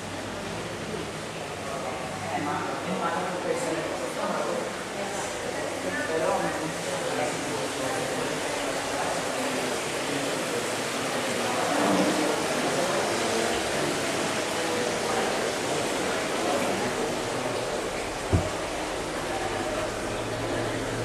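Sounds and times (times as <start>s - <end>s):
faint murmuring voices: 0.0s - 21.0s
steady room hiss: 0.0s - 21.0s.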